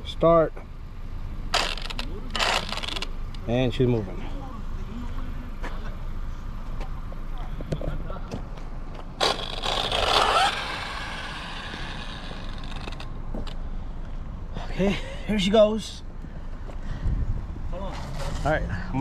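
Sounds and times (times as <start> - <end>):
steady outdoor rumble: 0.0 - 19.0
electric motor whining: 9.2 - 13.5.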